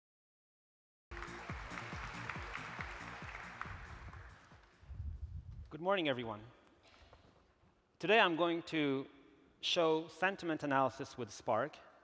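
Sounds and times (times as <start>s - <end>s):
stage music with drum beat: 1.1s - 4.7s
audience applause: 1.1s - 4.8s.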